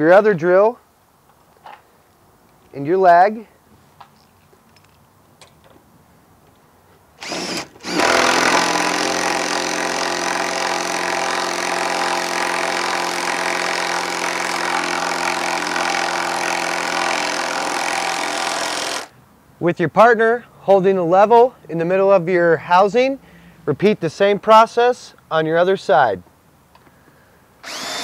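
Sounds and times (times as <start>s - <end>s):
power drill driving screw into wood: 7.2s - 19.1s, 27.6s - 28.0s.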